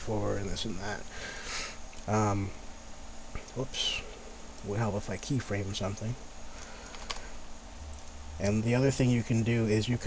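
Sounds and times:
man sniffing: 1.2s - 1.8s.

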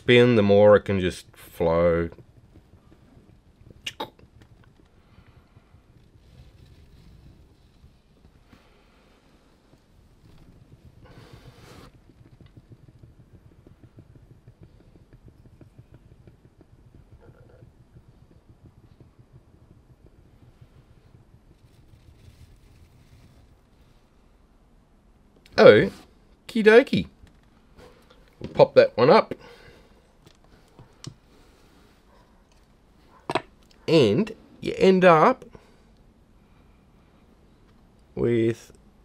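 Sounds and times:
paint spinner fluttering rumble: 0.0s - 24.4s.

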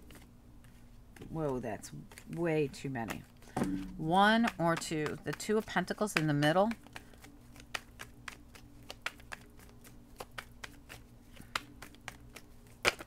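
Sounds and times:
cards being shuffled: 0.0s - 13.0s
faint steady hum: 0.0s - 13.0s.

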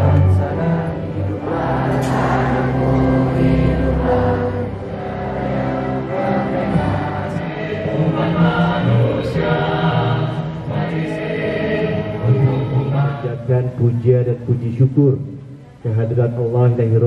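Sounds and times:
choir singing held chords: 0.0s - 14.8s.

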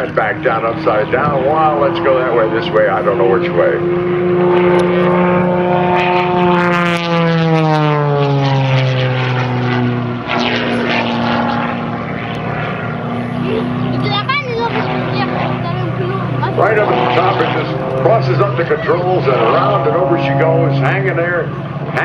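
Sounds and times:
propeller airplane droning overhead: 0.0s - 22.0s.

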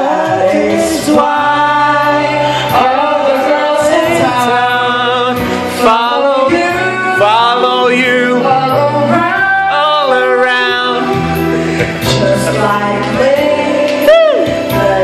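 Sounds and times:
backing track with steady beat: 0.0s - 15.0s
person singing into microphone: 0.0s - 15.0s.

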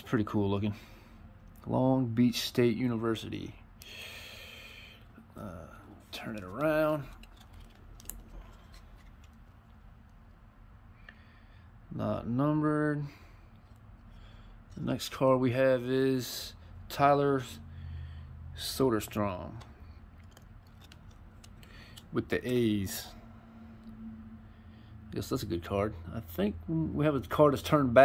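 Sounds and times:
steady low hum: 0.0s - 28.0s
trading cards rustling: 5.8s - 10.3s, 19.2s - 23.0s.

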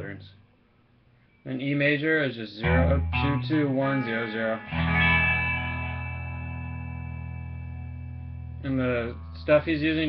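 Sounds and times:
guitar chord strum ringing: 2.6s - 10.0s.

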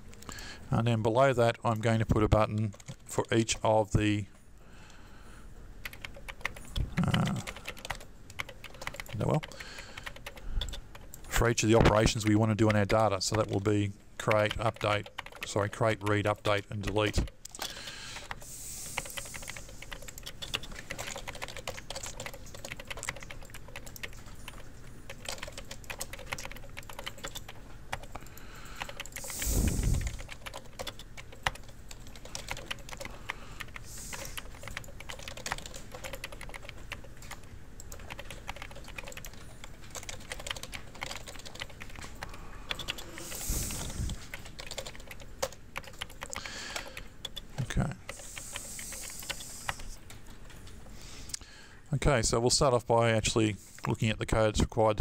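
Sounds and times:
keyboard typing clicks: 5.8s - 13.6s, 14.2s - 16.2s, 19.0s - 50.8s.

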